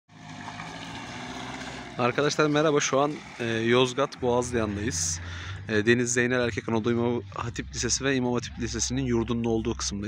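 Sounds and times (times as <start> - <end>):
vehicle engine hum: 0.1 - 10.0.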